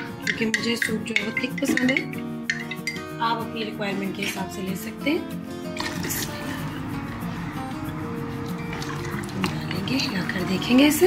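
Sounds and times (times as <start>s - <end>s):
background music with steady tones: 0.0s - 11.0s.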